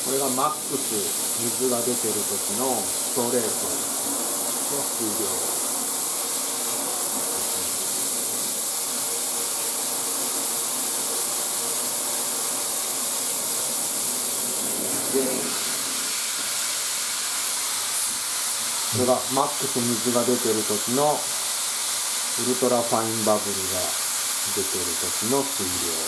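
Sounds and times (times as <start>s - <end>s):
shower spray hissing: 0.0s - 26.0s.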